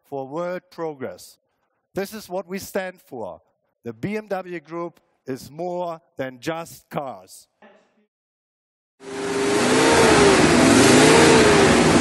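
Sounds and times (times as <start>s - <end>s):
car engine revving: 9.0s - 12.0s.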